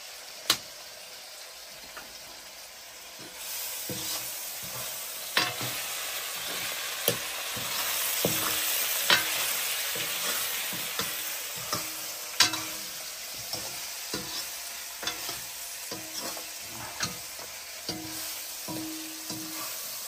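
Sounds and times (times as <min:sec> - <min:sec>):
potatoes sizzling in a wok: 0:00.0 - 0:20.0
metal ladle knocking on pan: 0:07.1 - 0:09.4, 0:10.0 - 0:12.8, 0:17.0 - 0:19.6.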